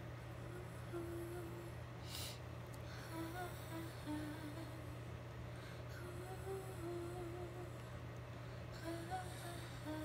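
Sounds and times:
low steady background hum: 0:00.0 - 0:10.0
woman humming a melody: 0:00.3 - 0:01.8, 0:02.9 - 0:05.0, 0:05.9 - 0:07.9, 0:08.8 - 0:10.0.

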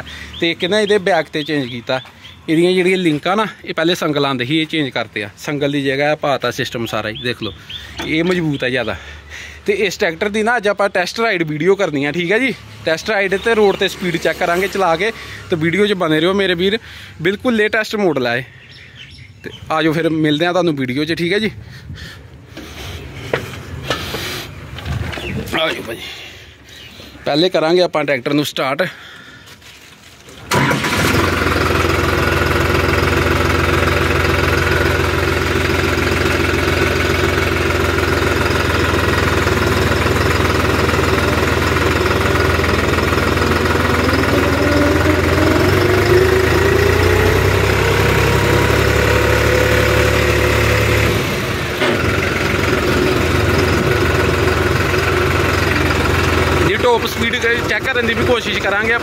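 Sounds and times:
tractor diesel engine running: 0:00.0 - 0:19.2, 0:21.0 - 0:26.4, 0:30.2 - 0:59.0.

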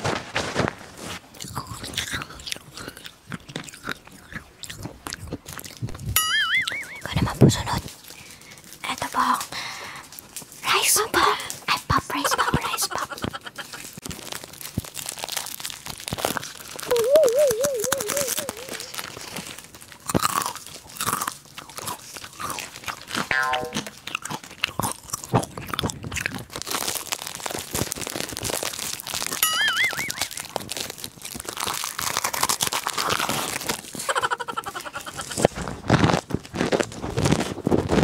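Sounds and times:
crunchy snacks being chewed: 0:00.9 - 0:38.0
short wavering tone: 0:06.2 - 0:07.0, 0:16.9 - 0:18.9, 0:23.3 - 0:24.0.

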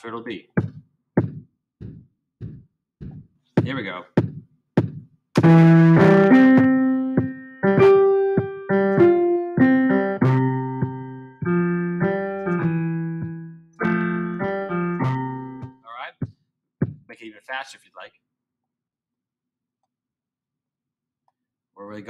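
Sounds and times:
drum machine beat: 0:00.6 - 0:17.1
piano melody: 0:05.4 - 0:15.8.

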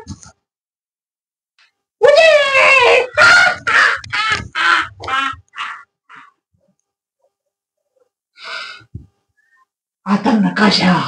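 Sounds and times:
man's rasping cackle: 0:03.2 - 0:06.4.

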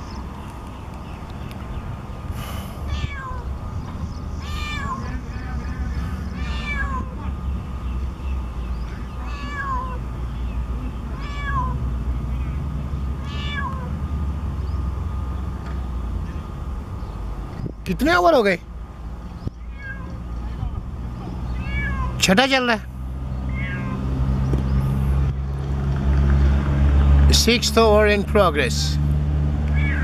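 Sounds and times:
meow-like animal cries: 0:02.9 - 0:03.5, 0:04.4 - 0:05.2, 0:06.2 - 0:07.2, 0:09.1 - 0:10.0, 0:11.1 - 0:11.8, 0:13.2 - 0:14.0, 0:19.6 - 0:20.2, 0:21.5 - 0:22.2, 0:23.5 - 0:24.2, 0:29.7 - 0:30.0.

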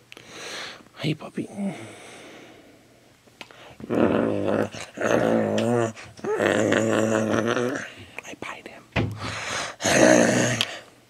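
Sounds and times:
low wordless moaning: 0:03.8 - 0:07.9.

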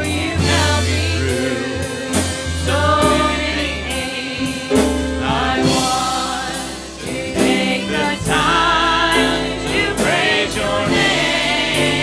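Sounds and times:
women singing gospel: 0:00.0 - 0:12.0.

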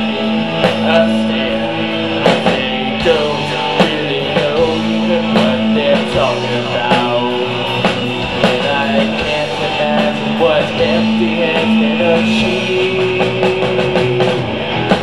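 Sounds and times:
bass guitar: 0:00.0 - 0:15.0
distorted electric guitars: 0:00.0 - 0:15.0
drum kit beat: 0:00.0 - 0:15.0.

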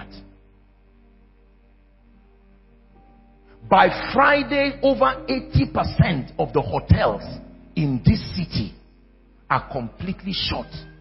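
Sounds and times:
soft background music: 0:00.0 - 0:11.0
person speaking: 0:03.6 - 0:11.0.

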